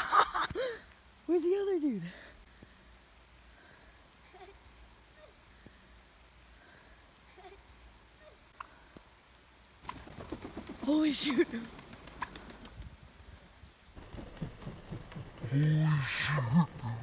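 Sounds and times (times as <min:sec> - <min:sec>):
turkey wingbeats: 0:09.8 - 0:12.9.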